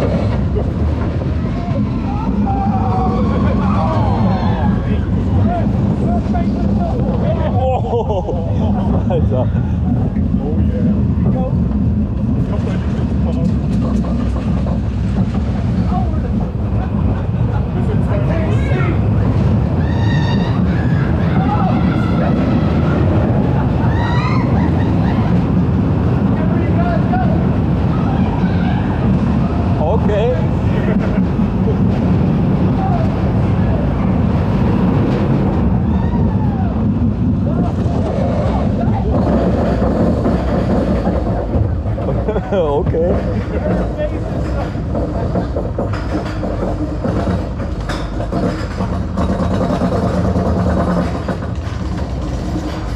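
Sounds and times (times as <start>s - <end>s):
roller coaster rumble and wind: 0.0s - 52.9s
riders screaming and whooping: 0.1s - 10.9s, 15.7s - 29.9s, 31.6s - 42.6s.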